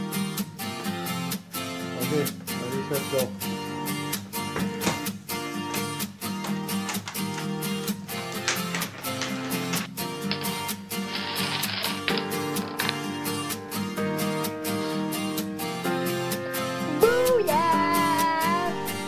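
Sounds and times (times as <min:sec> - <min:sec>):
strummed acoustic guitar: 0:00.0 - 0:19.0.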